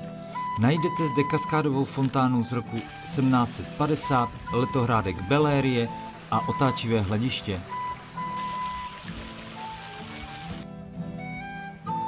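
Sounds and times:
background music: 0.0s - 12.0s
fountain water splashing: 2.7s - 10.6s.

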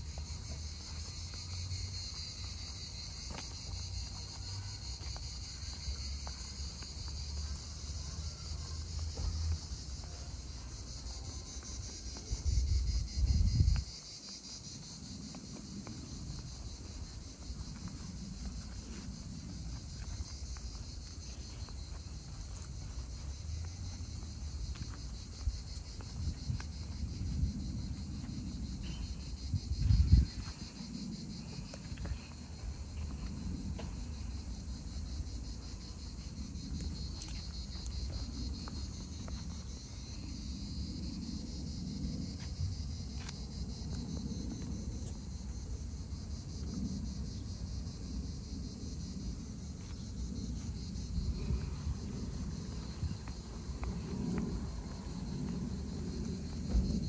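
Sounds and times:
insects chirring: 0.0s - 57.0s
wind rumble on microphone: 8.9s - 57.0s.

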